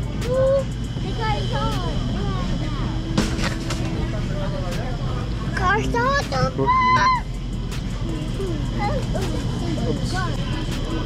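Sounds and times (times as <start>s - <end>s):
faint voices: 0.0s - 11.0s
store hum: 0.0s - 11.0s.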